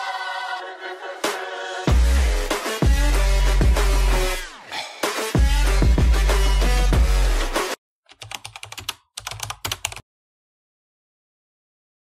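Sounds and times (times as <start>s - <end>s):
electronic music with heavy bass: 1.2s - 7.8s
computer keyboard typing: 8.1s - 10.0s.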